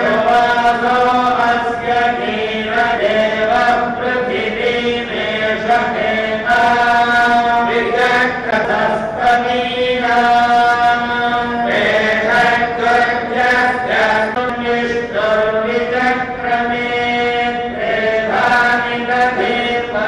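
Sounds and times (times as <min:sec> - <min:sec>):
priests chanting in unison: 0:00.0 - 0:20.0.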